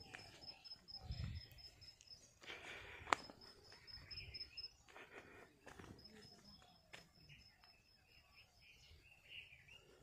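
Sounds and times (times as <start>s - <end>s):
cricket chirping: 0.0s - 9.5s.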